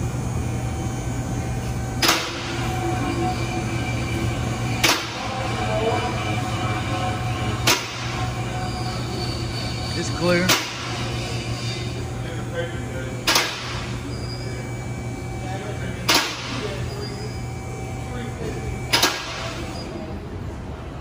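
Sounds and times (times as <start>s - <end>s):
hydraulic pump motor hum: 0.0s - 20.0s
faint squeals: 5.2s - 10.4s, 14.0s - 14.7s, 16.6s - 17.6s.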